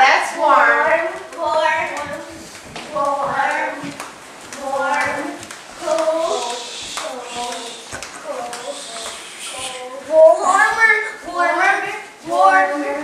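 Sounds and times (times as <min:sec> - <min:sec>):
woman and children calling: 0:04.6 - 0:13.0.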